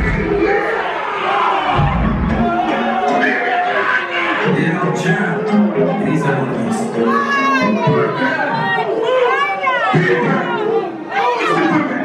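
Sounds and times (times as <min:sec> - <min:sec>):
crowd shouting: 0:00.0 - 0:05.1, 0:05.7 - 0:12.0.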